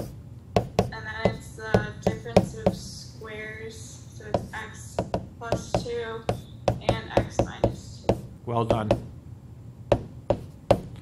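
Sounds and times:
stylus tapping on touchscreen: 0:00.0 - 0:02.9, 0:04.3 - 0:09.1, 0:09.9 - 0:11.0.

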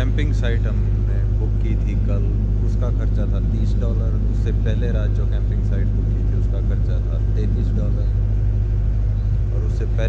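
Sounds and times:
man's voice: 0:00.0 - 0:08.1
paddle boat low rumble: 0:00.0 - 0:10.0.

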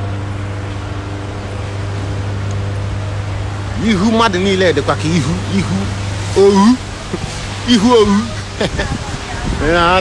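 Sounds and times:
faint steady drone: 0:00.0 - 0:08.7
low city hum: 0:00.0 - 0:10.0
traffic: 0:00.0 - 0:10.0.

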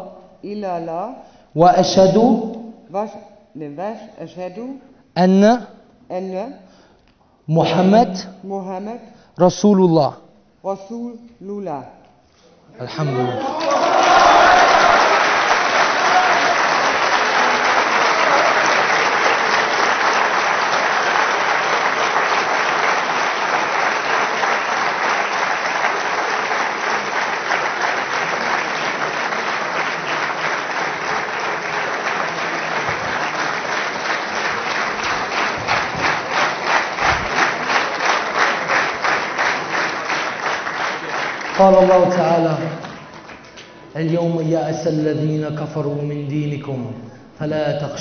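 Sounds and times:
audience applauding: 0:12.9 - 0:43.7.

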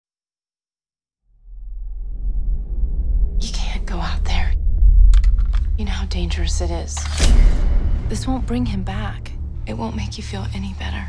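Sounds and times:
low steady drone: 0:01.4 - 0:11.0
person whispering: 0:03.4 - 0:04.6.

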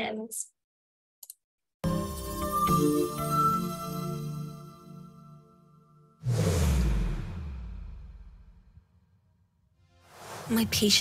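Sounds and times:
whoosh transition: 0:06.2 - 0:08.7, 0:10.0 - 0:11.0
low falling boom: 0:06.2 - 0:08.8.

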